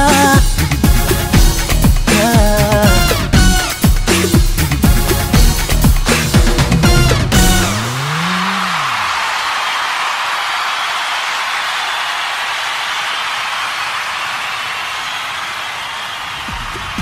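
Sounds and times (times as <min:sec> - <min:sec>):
drums: 0:00.0 - 0:08.9, 0:16.3 - 0:17.0.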